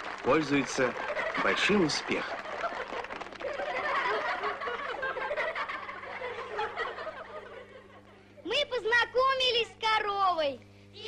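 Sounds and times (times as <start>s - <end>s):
steady low hum: 0.0s - 11.0s
audience laughing and chattering: 0.4s - 8.4s.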